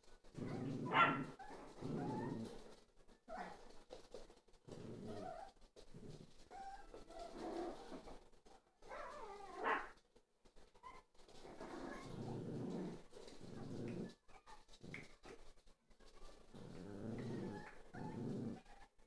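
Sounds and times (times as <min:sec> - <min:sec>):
puppies scuffling: 0:00.0 - 0:19.0.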